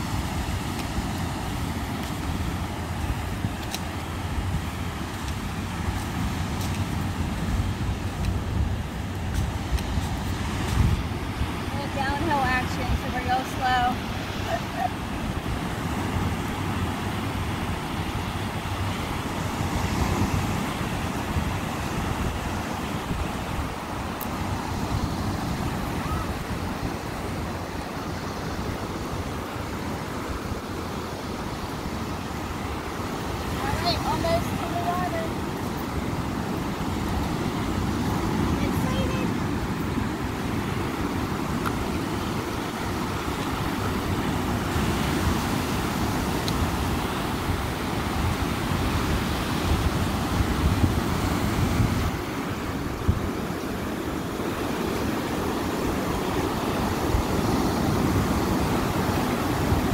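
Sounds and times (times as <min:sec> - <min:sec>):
ocean surf: 0:00.0 - 0:59.9
wind rumbling on microphone: 0:00.0 - 0:59.9.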